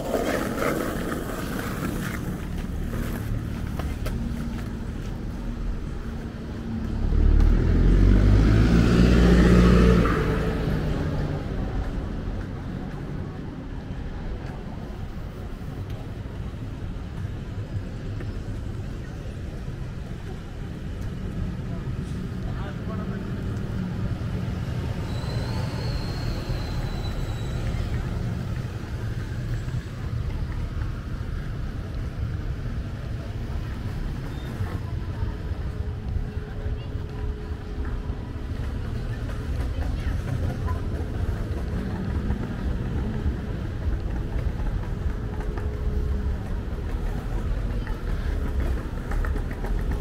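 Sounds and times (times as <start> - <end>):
traffic rumble: 0.0 - 50.0
buses idling: 9.9 - 50.0.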